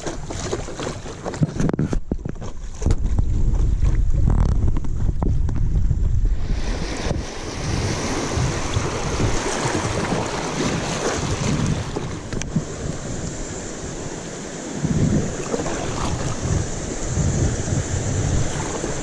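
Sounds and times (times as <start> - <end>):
wind buffeting microphone: 0.0 - 19.0
river water rushing: 6.6 - 19.0.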